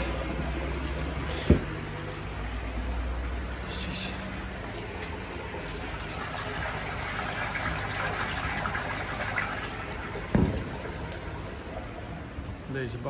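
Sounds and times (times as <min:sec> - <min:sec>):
water trickling and splashing: 0:00.0 - 0:13.0
low thump: 0:10.3 - 0:10.8.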